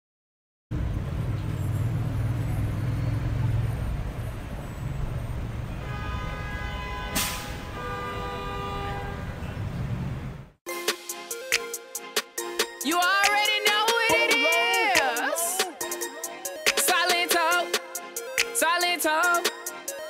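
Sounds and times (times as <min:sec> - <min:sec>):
traffic engine rumble: 0:00.7 - 0:10.6
held horn tones: 0:05.6 - 0:09.6
short hiss: 0:07.2 - 0:07.6.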